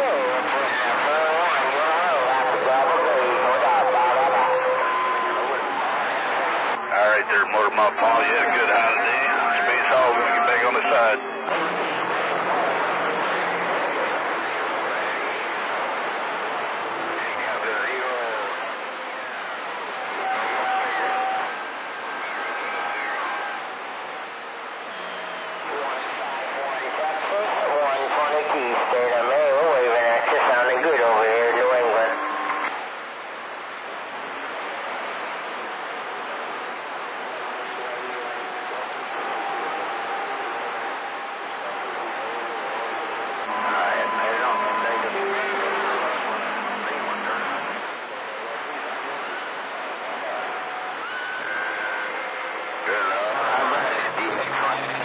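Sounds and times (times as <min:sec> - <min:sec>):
whistling radio tones: 0:00.0 - 0:06.1, 0:06.7 - 0:11.5, 0:17.1 - 0:33.4, 0:35.2 - 0:55.0
garbled distant radio voices: 0:00.0 - 0:55.0
radio static: 0:00.0 - 0:55.0.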